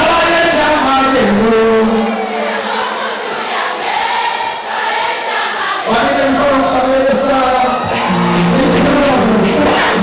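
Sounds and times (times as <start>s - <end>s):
audience singing along: 1.8s - 10.0s
backing music: 7.1s - 10.0s.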